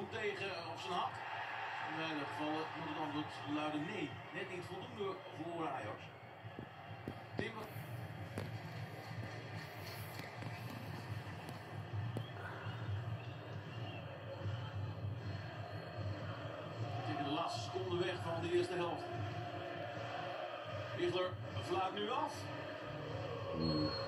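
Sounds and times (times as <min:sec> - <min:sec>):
stadium crowd murmur on television: 0:00.0 - 0:24.0.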